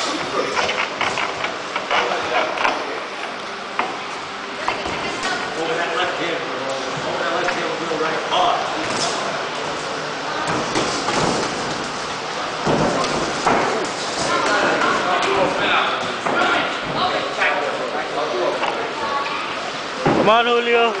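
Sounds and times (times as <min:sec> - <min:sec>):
voices in gym: 0:00.0 - 0:21.0.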